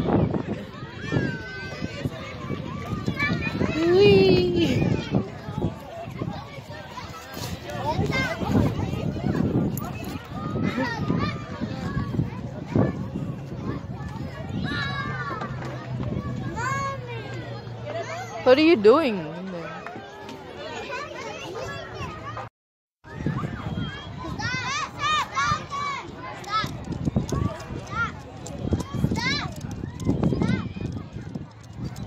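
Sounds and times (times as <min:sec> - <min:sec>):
wind buffeting microphone: 0:00.0 - 0:17.9, 0:23.1 - 0:32.0
children's voices: 0:00.0 - 0:19.2, 0:19.9 - 0:22.5, 0:23.1 - 0:31.4.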